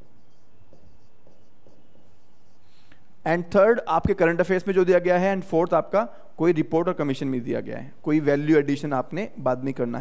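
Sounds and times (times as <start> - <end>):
stylus scratching on screen: 0.0 - 2.8.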